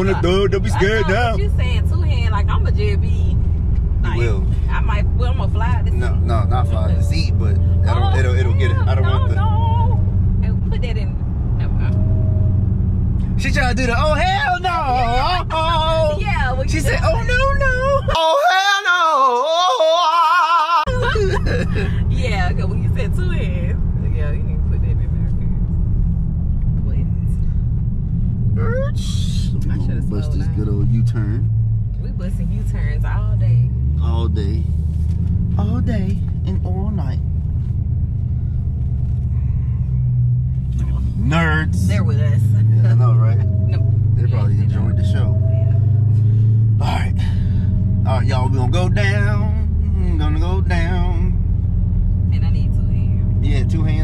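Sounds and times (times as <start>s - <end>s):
people talking and laughing: 0.0s - 2.0s, 20.6s - 25.1s
car engine droning in cabin: 0.0s - 54.0s.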